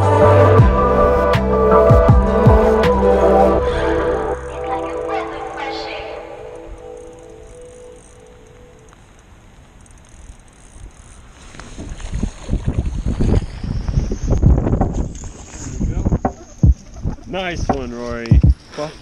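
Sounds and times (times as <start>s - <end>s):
background music: 0.0s - 8.1s.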